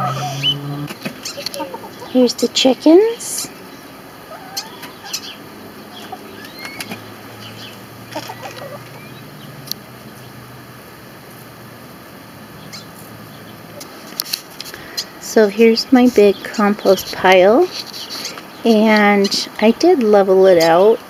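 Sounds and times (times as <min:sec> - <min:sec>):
hens calling: 0:00.0 - 0:10.3.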